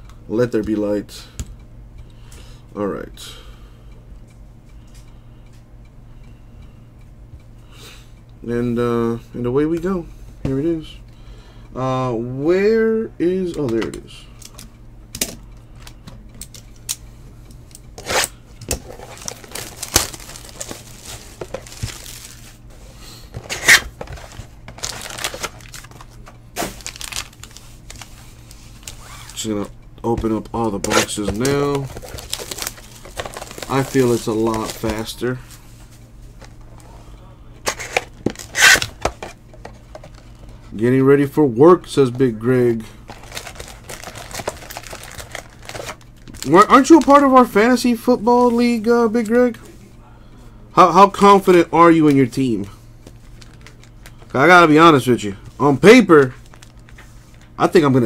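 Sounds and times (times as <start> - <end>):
plastic wrap ripping and crinkling: 18.0 - 22.6, 23.4 - 29.4, 30.8 - 35.1, 37.7 - 39.1, 43.1 - 47.2, 53.2 - 54.2, 56.3 - 57.0.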